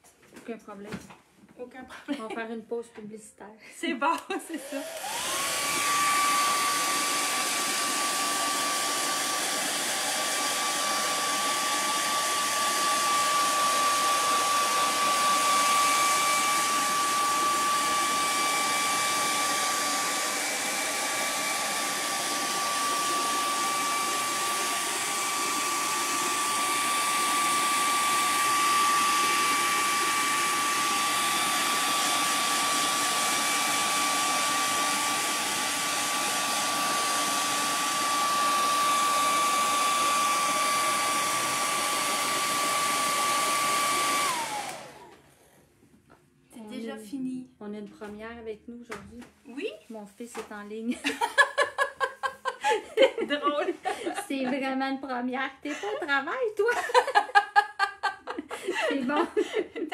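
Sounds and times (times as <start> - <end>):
hair dryer running: 4.1 - 45.7, 50.4 - 54.9, 55.7 - 59.9.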